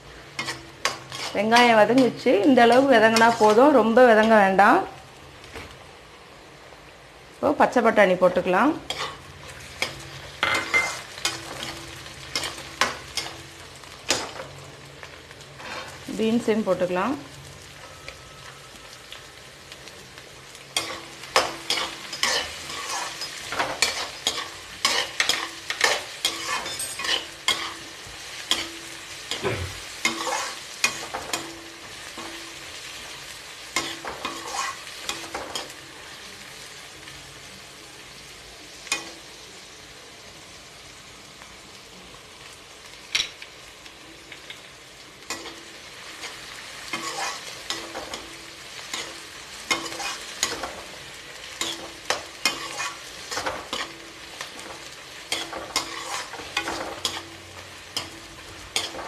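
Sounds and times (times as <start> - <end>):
light sizzle: 0.0 - 59.0
metal ladle scraping a pan: 0.4 - 2.1, 2.7 - 3.7, 8.9 - 13.4, 15.6 - 16.0, 20.8 - 27.8, 30.0 - 31.4, 33.8 - 35.7, 46.2 - 48.3, 49.7 - 50.8, 51.6 - 54.0, 54.6 - 57.4.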